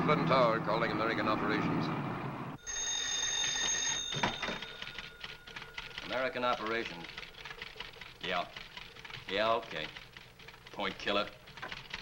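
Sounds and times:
telephone bell ringing: 0:02.6 - 0:07.0.

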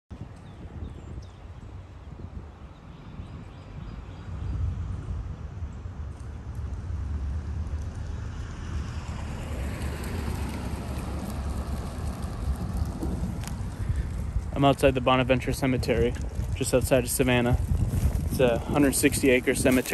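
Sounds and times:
low wind rumble on microphone: 0:00.1 - 0:19.9.

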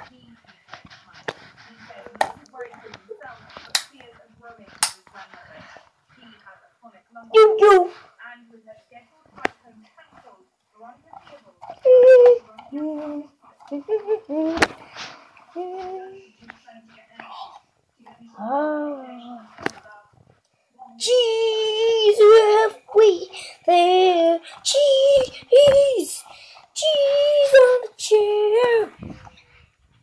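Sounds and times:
faint whispering: 0:00.0 - 0:30.0
faint murmuring voice: 0:09.3 - 0:30.0.

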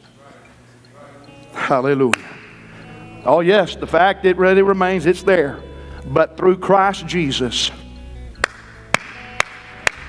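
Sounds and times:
hands clapping in a steady beat: 0:02.1 - 0:02.6, 0:08.4 - 0:10.0.

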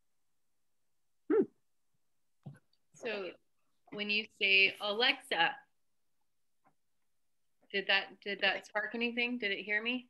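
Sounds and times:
person saying hmm: 0:01.3 - 0:01.6.

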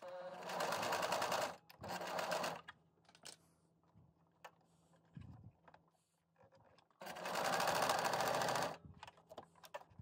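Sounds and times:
sewing machine stitching: 0:00.0 - 0:02.6, 0:07.0 - 0:08.8.

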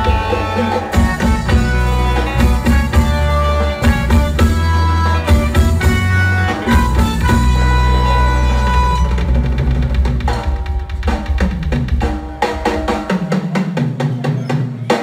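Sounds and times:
deep bass line: 0:00.0 - 0:12.1
drum beat: 0:00.0 - 0:15.0
live band playing: 0:00.0 - 0:15.0.

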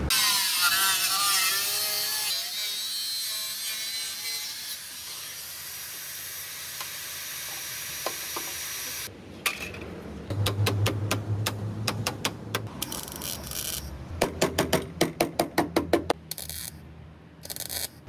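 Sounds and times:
angle grinder cutting metal: 0:00.1 - 0:09.1.

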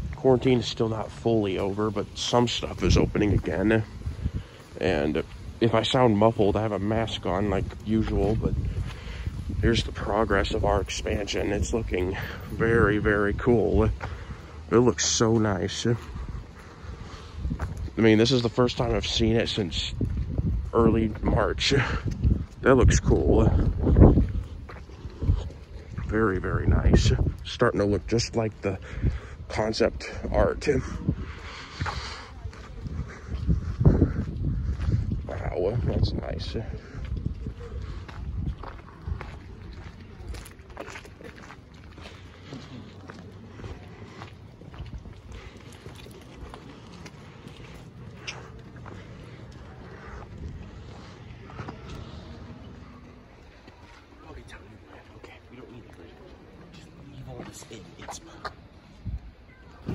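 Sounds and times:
low outdoor rumble: 0:00.0 - 0:59.9
wind buffeting microphone: 0:00.0 - 0:59.9.

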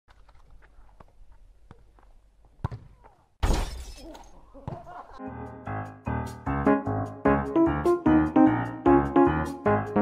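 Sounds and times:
glass shattering: 0:03.4 - 0:04.3.

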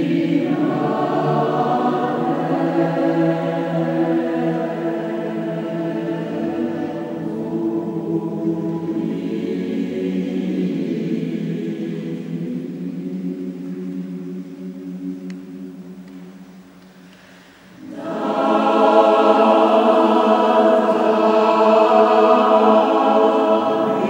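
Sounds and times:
choir singing sustained chords: 0:00.0 - 0:24.0.

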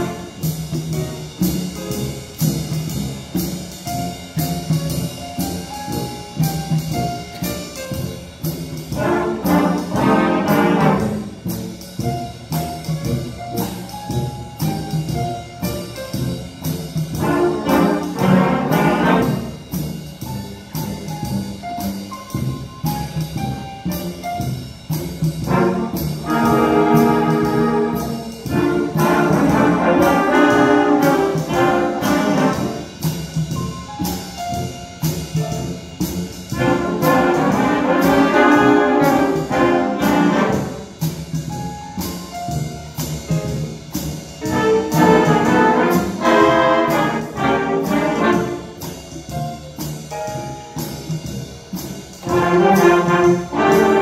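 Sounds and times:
concert band playing: 0:00.0 - 0:54.0.

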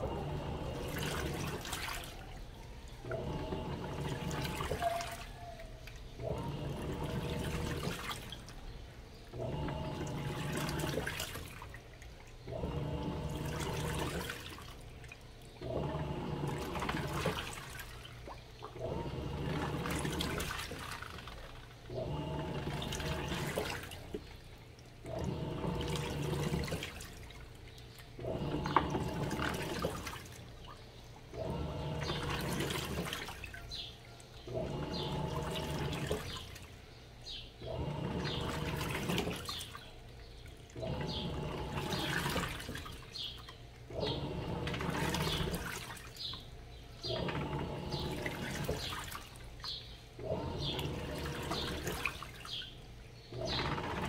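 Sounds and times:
washing machine motor hum: 0:00.0 - 0:54.0
water sloshing: 0:00.0 - 0:54.0.

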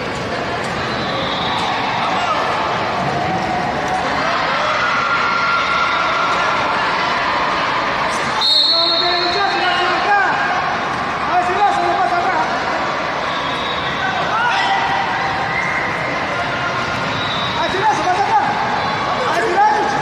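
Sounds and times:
referee's whistle blast: 0:08.4 - 0:10.0
people shouting: 0:09.4 - 0:20.0.

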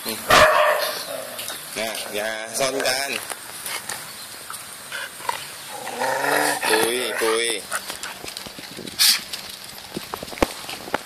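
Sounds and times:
man calling a dog: 0:06.5 - 0:07.7.

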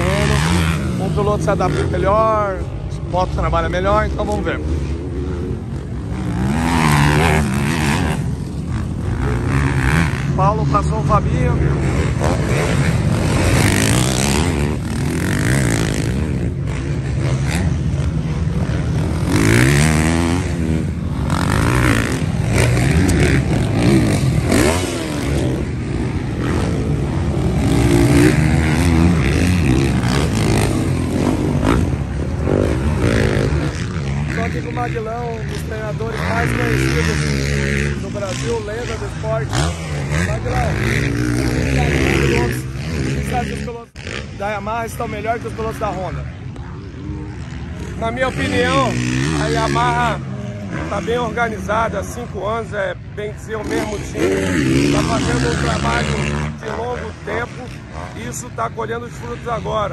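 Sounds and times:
motocross bike engines revving: 0:00.0 - 0:59.9.

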